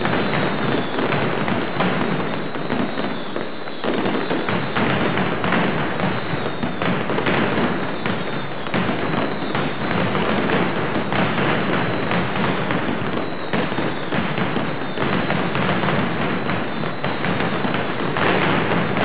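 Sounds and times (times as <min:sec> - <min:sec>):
firecrackers banging: 0:00.0 - 0:19.0.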